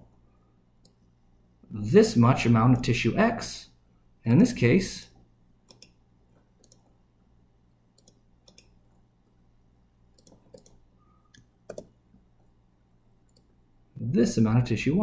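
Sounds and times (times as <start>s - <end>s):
computer mouse clicking: 5.7s - 6.0s, 6.6s - 6.9s, 8.0s - 8.8s, 10.2s - 12.0s.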